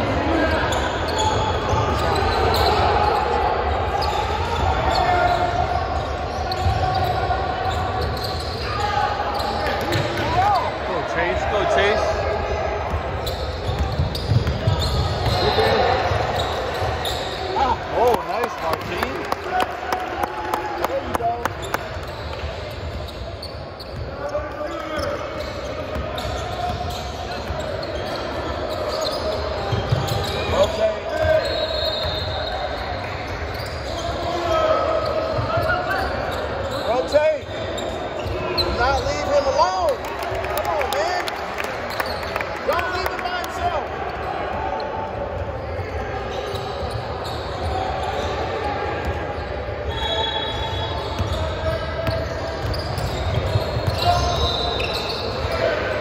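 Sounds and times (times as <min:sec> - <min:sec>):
sneakers squeaking: 0:00.0 - 0:19.2, 0:20.7 - 0:40.4, 0:41.4 - 0:43.2, 0:43.8 - 0:56.0
voices echoing in a hall: 0:00.0 - 0:56.0
basketball bouncing on wooden court: 0:12.9 - 0:15.5.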